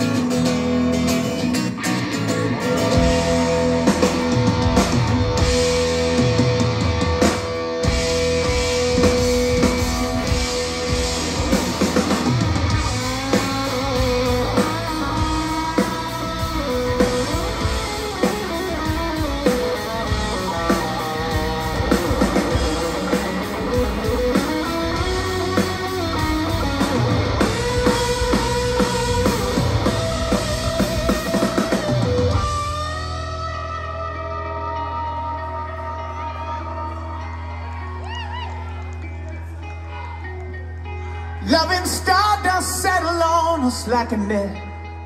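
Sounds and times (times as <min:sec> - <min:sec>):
bass guitar: 0:00.0 - 0:45.0
drums: 0:00.0 - 0:45.0
electric guitar lead: 0:00.0 - 0:45.0.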